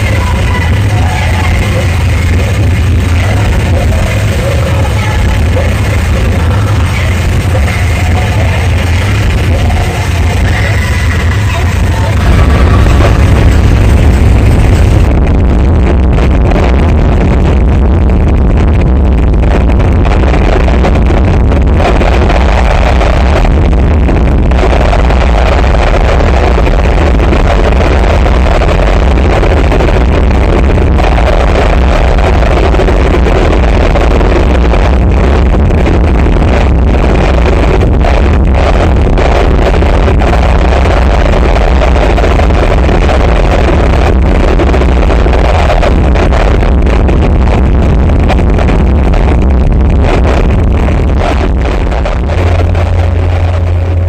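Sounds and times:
harsh distorted noise music: 0.0s - 54.0s.

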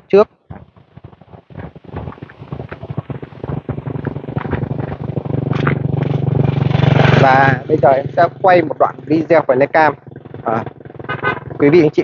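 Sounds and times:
crackling and ticking: 0.0s - 12.0s
vehicle engine drone: 0.0s - 12.0s.

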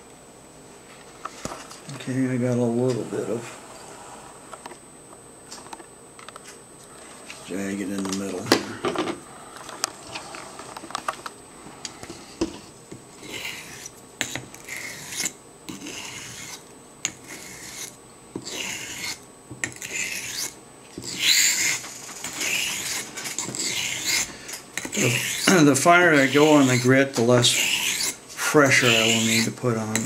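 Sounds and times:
razor scraping on whetstone: 13.2s - 30.0s.

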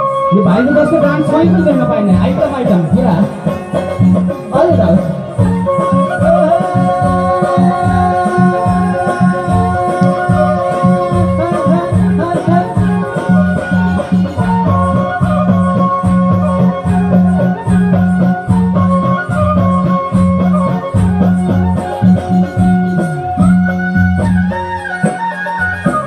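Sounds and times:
sustained melody lines: 0.0s - 26.0s
steady drum beat: 0.7s - 26.0s
man singing folk song: 6.1s - 13.1s.

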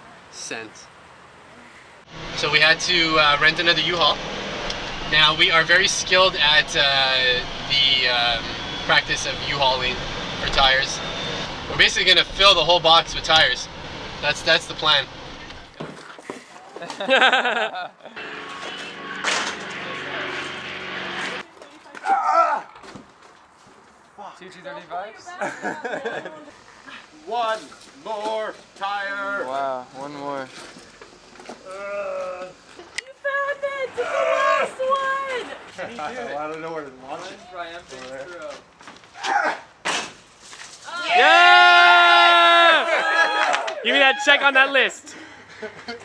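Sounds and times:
vehicle engine droning: 2.1s - 15.8s, 18.2s - 21.5s
people laughing: 16.7s - 18.2s, 25.3s - 26.6s, 44.9s - 46.0s
person grunting with effort: 31.6s - 32.6s.

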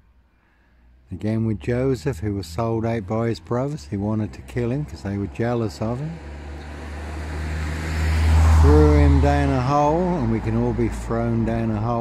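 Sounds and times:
car approaching on road: 0.4s - 12.0s.

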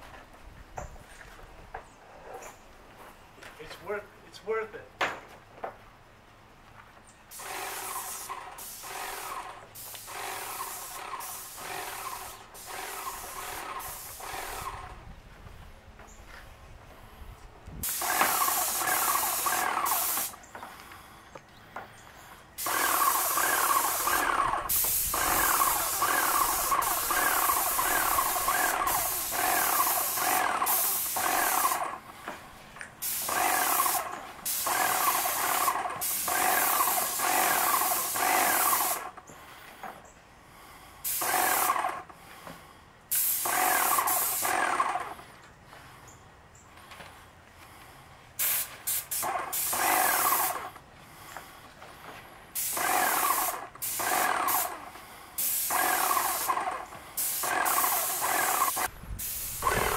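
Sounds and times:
paint sprayer hissing: 7.3s - 15.0s, 17.8s - 21.0s, 22.6s - 39.2s, 41.0s - 42.1s, 43.1s - 45.3s, 48.4s - 59.9s
pulsing sprayer whine: 22.7s - 32.0s, 55.7s - 59.9s.

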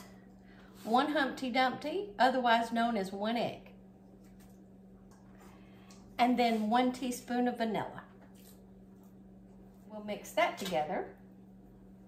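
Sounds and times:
steady low hum: 0.0s - 12.0s
woman's voice: 0.8s - 3.7s, 6.2s - 8.1s, 9.9s - 11.2s.

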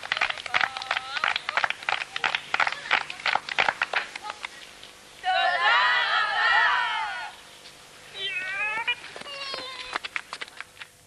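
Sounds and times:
high-pitched wavering cries: 8.0s - 10.0s.

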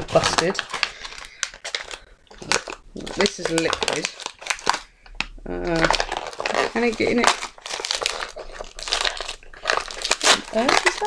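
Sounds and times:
cellophane crinkling: 0.0s - 11.0s.

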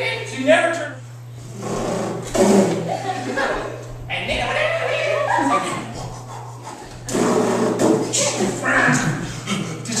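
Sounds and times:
man's noisy mouth sound: 1.4s - 2.9s, 5.8s - 8.3s.

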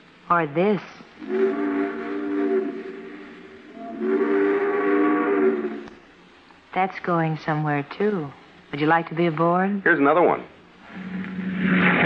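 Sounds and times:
steam locomotive chime whistle: 1.2s - 5.8s.

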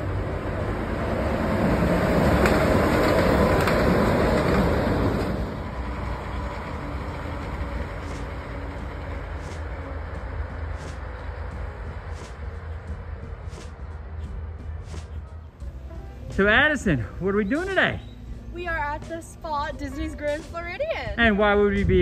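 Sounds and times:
monorail train passing: 0.0s - 22.0s
steady low rumble: 0.0s - 22.0s.

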